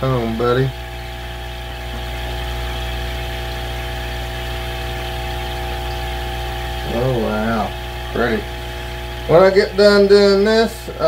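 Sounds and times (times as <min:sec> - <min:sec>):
aquarium equipment electrical hum: 0:00.0 - 0:11.0.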